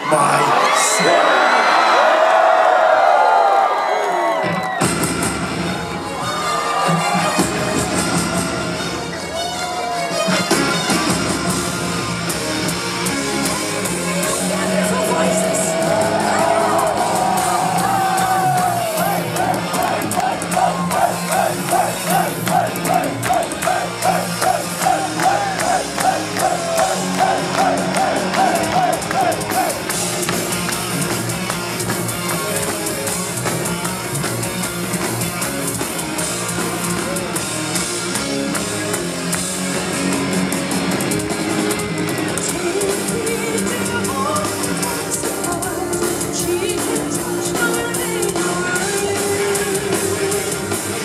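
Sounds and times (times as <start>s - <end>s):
live metal band playing: 4.7s - 51.0s.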